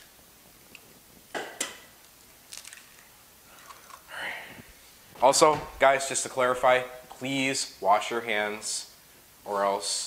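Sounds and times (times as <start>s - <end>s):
eggshells crunching: 2.4s - 4.1s
eggs cracking on metal bowl: 2.5s - 4.1s.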